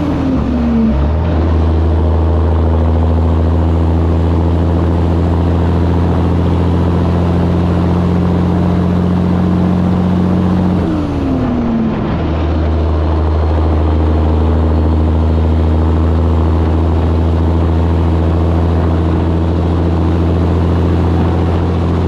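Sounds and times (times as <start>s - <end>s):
truck diesel engine running: 0.0s - 22.0s.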